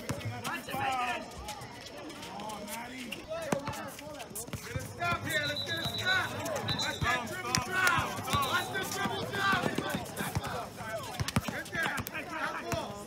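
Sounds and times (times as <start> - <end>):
indistinct voices: 1.4 - 13.0
high steady whistle-like tone: 5.2 - 7.4, 8.3 - 8.9
basketball bouncing on court: 6.7 - 12.9.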